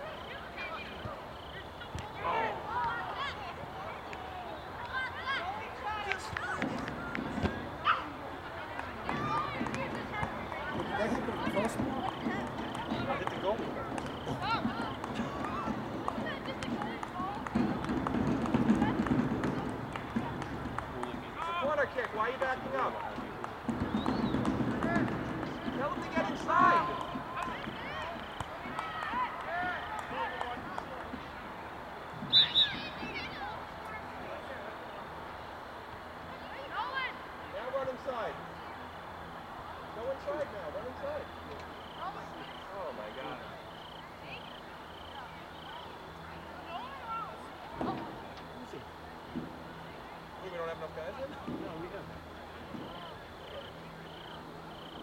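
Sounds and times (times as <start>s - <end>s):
murmur of voices: 0.0s - 55.0s
players shouting: 0.1s - 34.6s.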